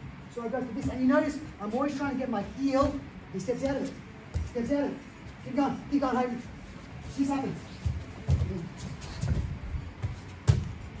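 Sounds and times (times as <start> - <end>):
feet shuffling on mat: 6.4 - 11.0.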